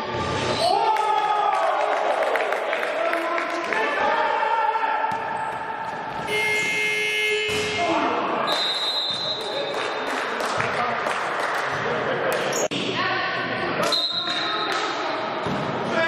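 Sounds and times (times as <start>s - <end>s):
scoreboard buzzer: 6.3s - 7.5s
referee's whistle: 6.3s - 7.8s, 8.5s - 9.7s, 13.8s - 14.6s.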